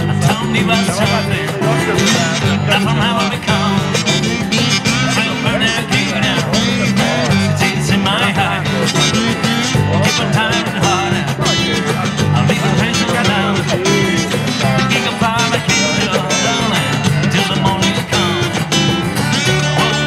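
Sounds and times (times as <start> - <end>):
cajon: 0.0 - 20.0
electric bass: 0.0 - 20.0
live rock band playing: 0.0 - 20.0
pitch-bending melody line: 0.0 - 20.0
strummed acoustic guitars: 0.0 - 20.0.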